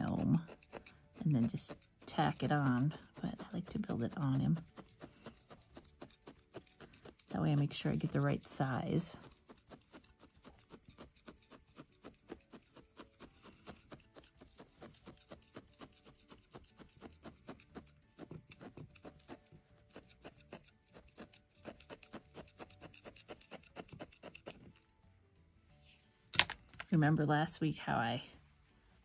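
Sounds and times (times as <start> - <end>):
felting needle scratchy pokes: 0.0 - 25.0.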